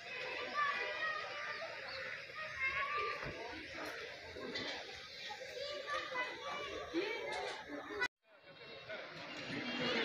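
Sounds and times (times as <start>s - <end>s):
chatter of voices: 0.0s - 10.0s.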